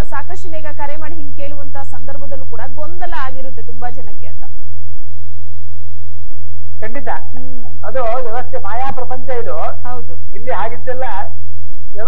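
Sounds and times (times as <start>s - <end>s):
faint high whine: 0.0s - 12.0s
person speaking: 6.8s - 11.4s.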